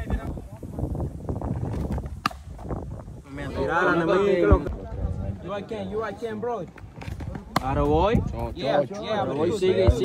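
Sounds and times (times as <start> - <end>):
wind: 0.0 - 10.0
baseball popping into leather mitt: 1.7 - 2.7.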